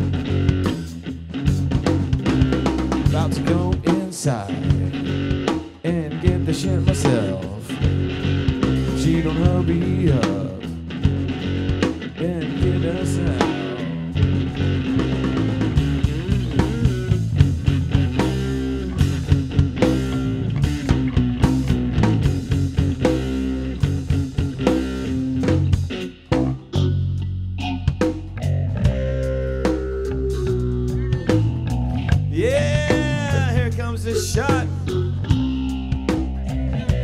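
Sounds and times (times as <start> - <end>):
bass: 0.0 - 37.0
drum kit: 0.0 - 37.0
electric guitar: 0.0 - 37.0.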